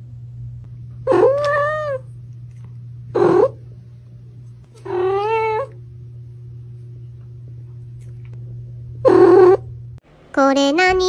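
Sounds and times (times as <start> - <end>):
low steady hum: 0.0 - 11.0
cat meowing: 4.8 - 5.7.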